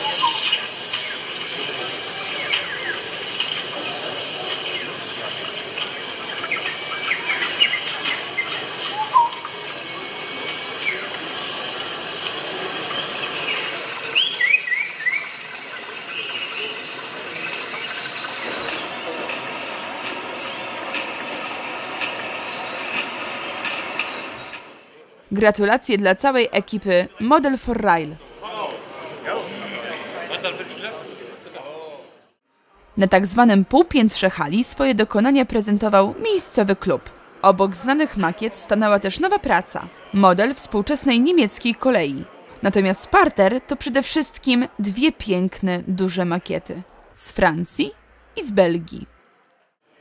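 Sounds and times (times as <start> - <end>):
hall murmur and hum: 26.2 - 32.3.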